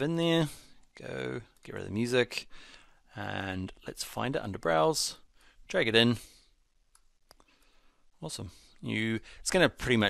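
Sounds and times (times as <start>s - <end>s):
computer mouse clicks: 6.9s - 7.6s.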